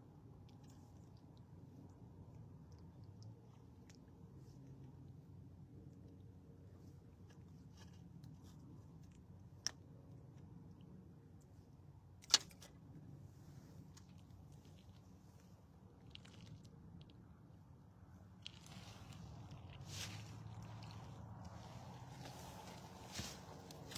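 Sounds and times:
rustling: 18.4s - 23.9s.

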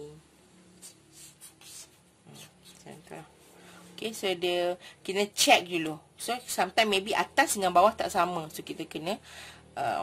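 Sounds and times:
felt-tip marker scratching on paper: 0.8s - 3.0s.

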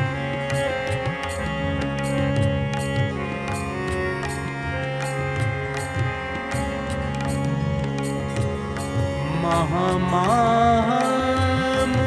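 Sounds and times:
light percussion strokes: 0.0s - 10.4s
gliding wavering melody: 0.0s - 12.0s
harmonium chords: 0.0s - 12.0s.

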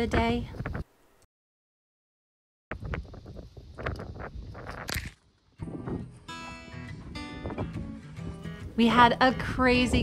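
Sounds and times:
wind buffeting microphone: 0.0s - 0.9s, 2.7s - 6.2s, 6.9s - 10.0s
acoustic guitar music: 5.6s - 10.0s.

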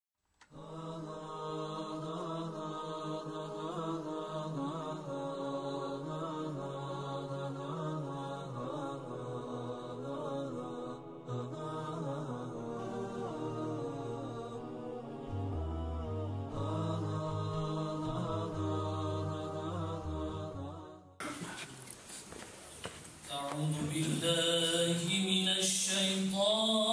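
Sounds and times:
vocal chanting: 0.4s - 21.8s, 23.3s - 26.9s.

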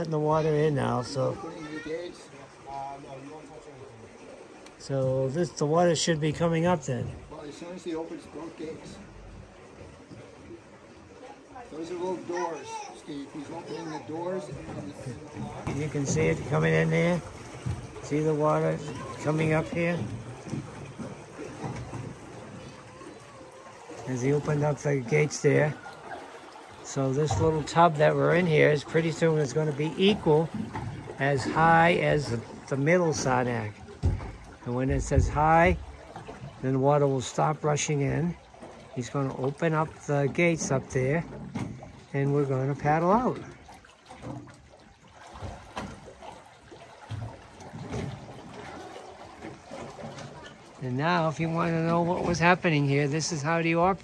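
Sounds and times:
water rushing into lock chamber: 0.0s - 54.0s.

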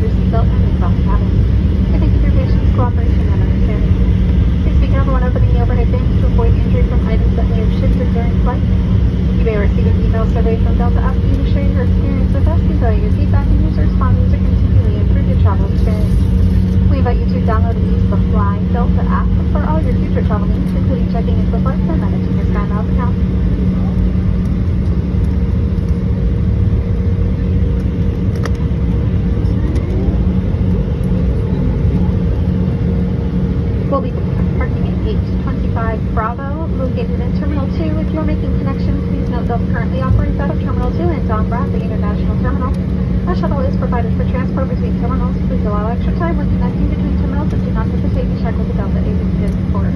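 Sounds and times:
voices: 0.0s - 24.5s, 28.4s - 32.6s, 33.8s - 49.9s
jet airliner taxiing rumble: 0.0s - 49.9s.

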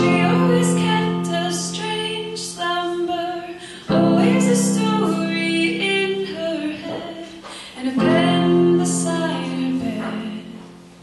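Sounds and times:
digital piano chords: 0.0s - 7.2s, 7.8s - 11.0s
woman singing slow song: 0.0s - 10.8s.

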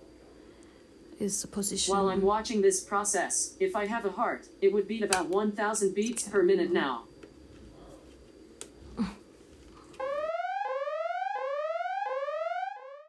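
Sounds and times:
electronic alarm rising whoop: 10.0s - 13.0s.

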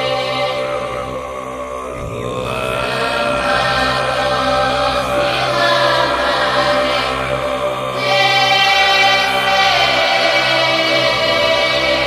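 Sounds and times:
choir singing sustained chords: 0.0s - 12.0s.

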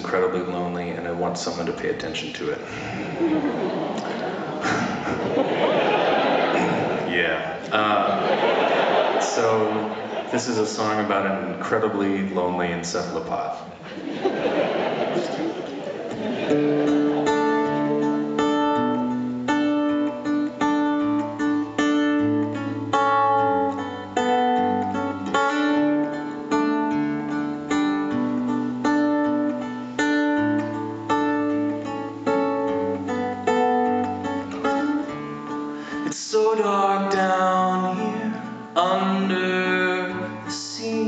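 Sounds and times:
acoustic guitar arpeggio: 16.1s - 41.0s.

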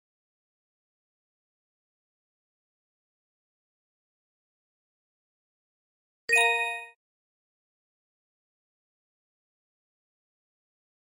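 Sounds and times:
electronic bell-like chime: 6.3s - 7.0s.

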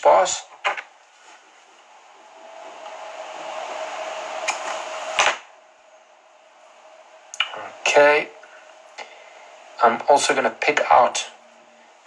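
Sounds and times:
steady hum: 0.0s - 12.0s
fibre rustling hiss: 0.9s - 12.0s.

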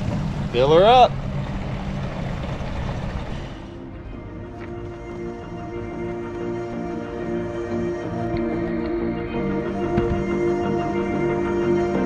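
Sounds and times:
music with sustained tones: 0.0s - 12.0s.

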